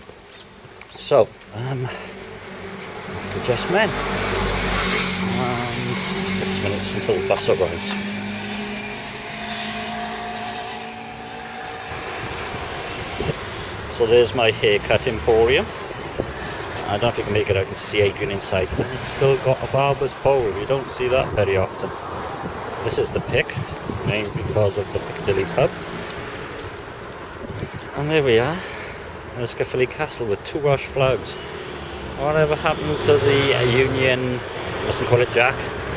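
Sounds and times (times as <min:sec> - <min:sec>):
tyre noise of passing traffic: 0:00.0 - 0:35.9
vehicle engine running: 0:02.3 - 0:17.5.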